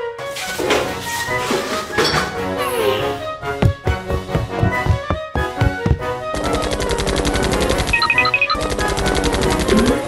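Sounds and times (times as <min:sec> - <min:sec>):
cheerful background music: 0:00.0 - 0:10.0
helicopter rotor chopping: 0:05.0 - 0:10.0.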